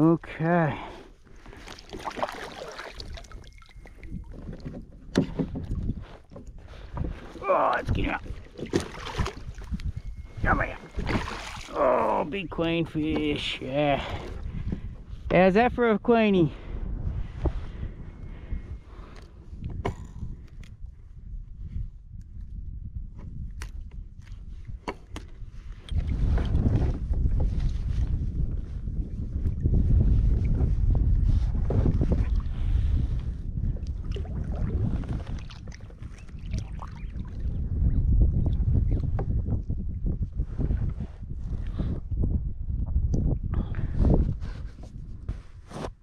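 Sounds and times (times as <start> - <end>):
water splashing against kayak hull: 1.4 - 9.9, 10.8 - 12.4, 33.9 - 37.5.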